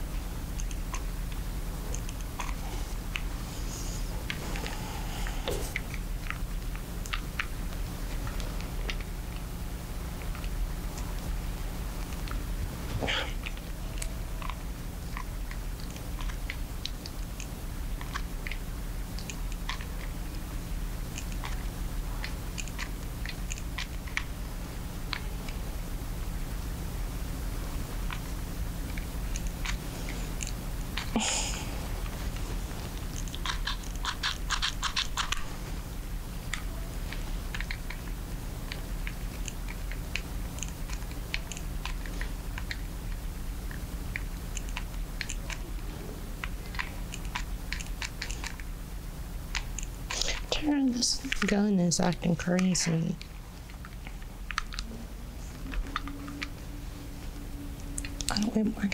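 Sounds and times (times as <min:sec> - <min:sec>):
steady low hum: 0:00.0 - 0:58.9.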